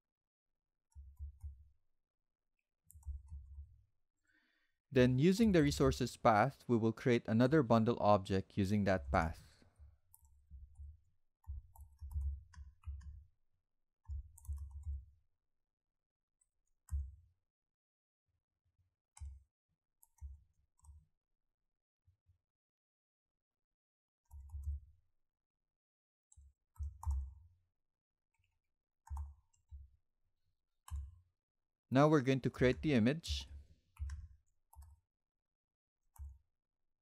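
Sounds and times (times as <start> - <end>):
computer keyboard typing: 11.5 - 13.2, 14.1 - 15.0, 26.8 - 27.3.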